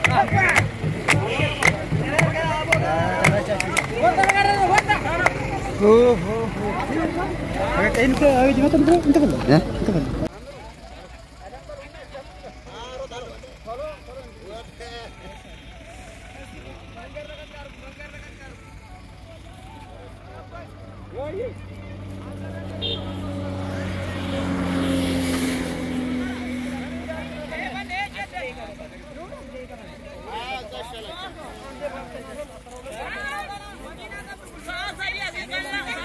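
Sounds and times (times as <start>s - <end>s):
vehicle engine passing by: 0.0s - 36.0s
voices talking: 0.0s - 36.0s.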